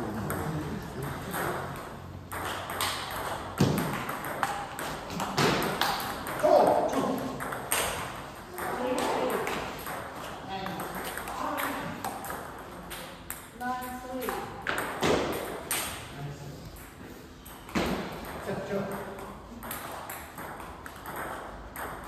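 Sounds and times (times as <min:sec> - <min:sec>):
table tennis balls clicking: 0:00.0 - 0:16.1, 0:16.7 - 0:22.0.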